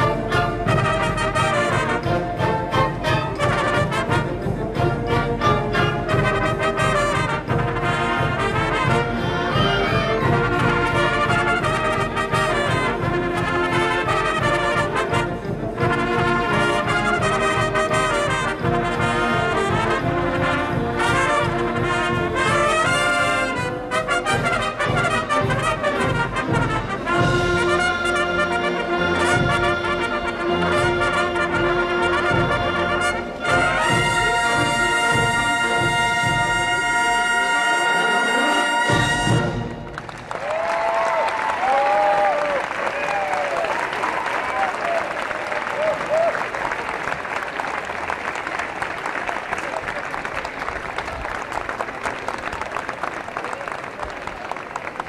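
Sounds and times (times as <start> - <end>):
trumpets playing: 0.0 - 40.0
concert band playing brass music: 0.0 - 40.3.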